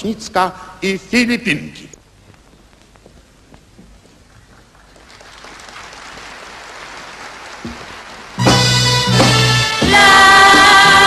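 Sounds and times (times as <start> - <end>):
audience applause: 4.3 - 8.5.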